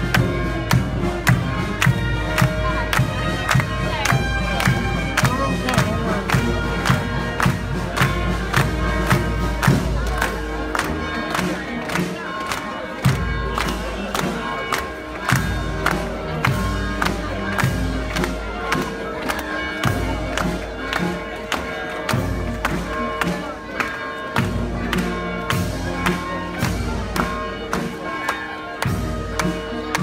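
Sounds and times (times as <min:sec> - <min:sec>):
steady drum beat: 0:00.0 - 0:23.5, 0:24.4 - 0:28.0
band music with horns: 0:00.0 - 0:30.0
crowd noise: 0:00.0 - 0:30.0.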